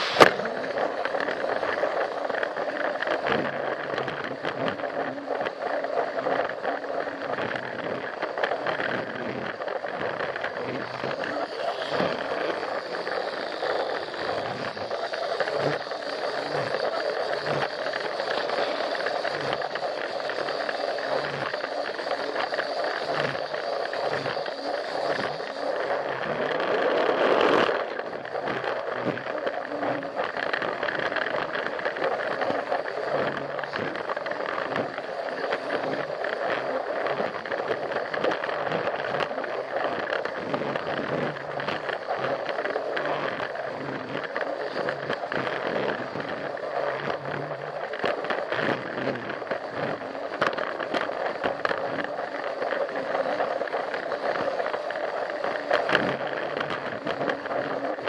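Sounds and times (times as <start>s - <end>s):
toy train motor and gears running: 0.0s - 58.0s.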